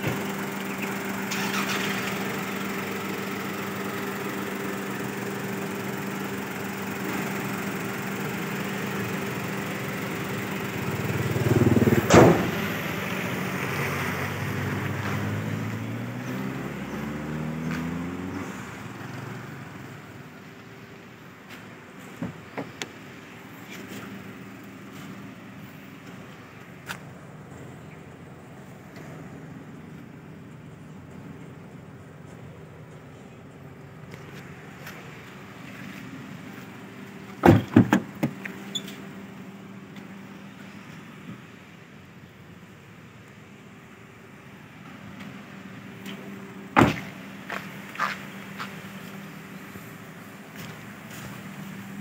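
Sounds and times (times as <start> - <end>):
car engine idling: 0.0 - 52.0
car door shutting thud: 12.0 - 12.6, 22.2 - 22.9, 37.4 - 38.4, 46.8 - 47.2.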